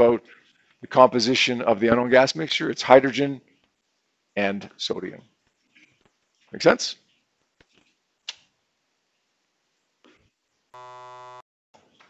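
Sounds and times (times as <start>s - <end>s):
low electronic buzzing tone: 10.7s - 11.4s.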